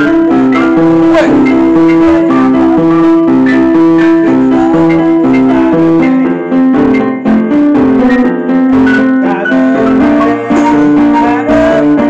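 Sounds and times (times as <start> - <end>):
electronic keyboard playing chords: 0.0 - 12.0.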